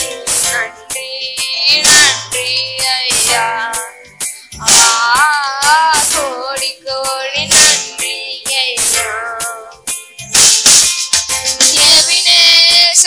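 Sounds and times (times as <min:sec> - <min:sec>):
boy singing with vibrato: 0:00.0 - 0:04.0, 0:04.6 - 0:09.9, 0:11.6 - 0:13.0
keyboard playing chords: 0:00.0 - 0:13.0
programmed drum beat: 0:00.0 - 0:13.0.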